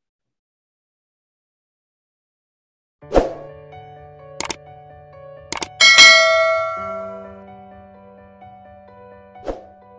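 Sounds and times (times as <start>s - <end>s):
soft background music: 3.0s - 9.9s
bell chime ringing: 5.7s - 7.4s.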